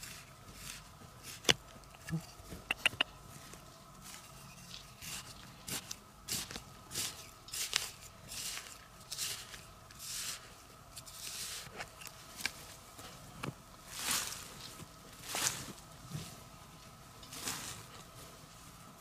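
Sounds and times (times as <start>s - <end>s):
digging dry soil: 0.0s - 19.0s
faint steady hum: 0.0s - 19.0s.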